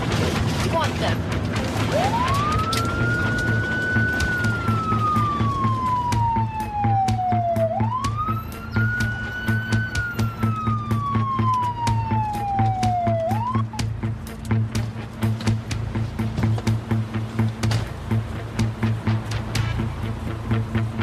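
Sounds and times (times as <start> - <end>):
background music with low beat: 0.0 - 21.0
police siren wailing: 1.0 - 15.6.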